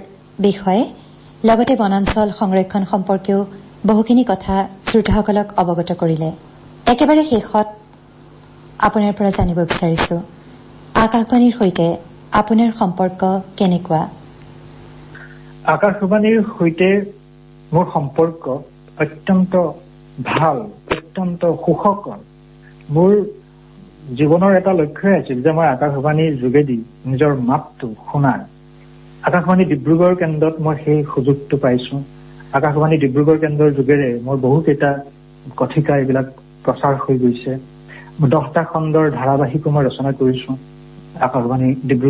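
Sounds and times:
person talking: 0.0 - 7.9, 8.8 - 10.3, 11.0 - 14.2, 15.2 - 28.5, 29.2 - 42.0
electrical mains hum: 0.0 - 42.0.

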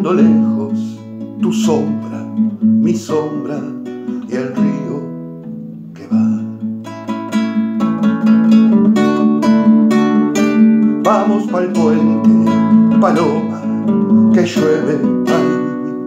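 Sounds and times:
classical guitar strumming: 0.0 - 16.0.

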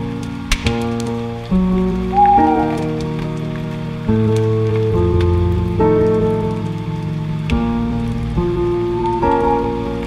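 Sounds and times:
patter of small crackles: 0.0 - 10.0
soft piano chords: 0.0 - 10.0.

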